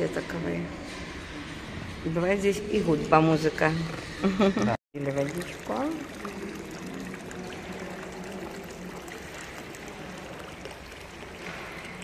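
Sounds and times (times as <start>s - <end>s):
water trickling into metal basin: 2.1s - 12.0s.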